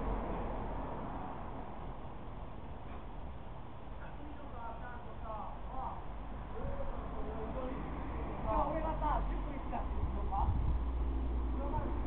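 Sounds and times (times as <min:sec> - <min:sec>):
low hum of street noise: 0:00.0 - 0:12.0
faint voices talking: 0:03.9 - 0:10.7.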